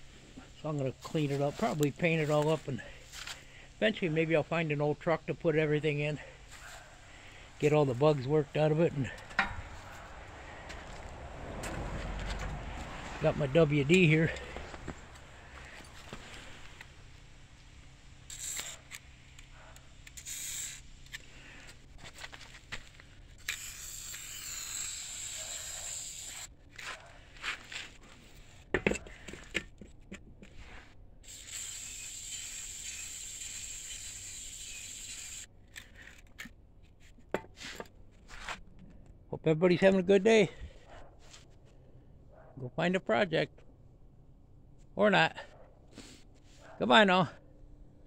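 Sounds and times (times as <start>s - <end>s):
aerosol can spraying: 23.5s - 26.4s, 31.3s - 35.4s.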